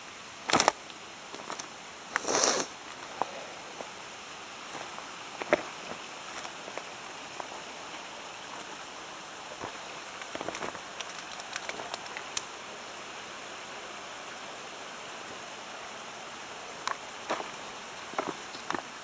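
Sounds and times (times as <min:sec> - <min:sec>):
footsteps crunching on rocky trail: 0:04.7 - 0:08.8, 0:09.5 - 0:12.2, 0:16.9 - 0:19.0.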